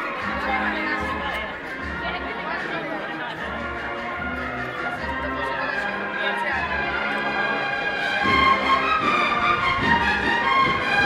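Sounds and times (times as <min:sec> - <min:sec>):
crowd chattering: 0:00.0 - 0:11.0
procession band music: 0:00.0 - 0:11.0.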